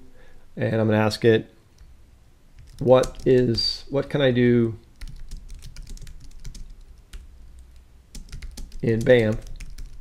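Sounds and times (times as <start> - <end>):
typing on computer keyboard: 2.6 - 3.6, 5.0 - 10.0.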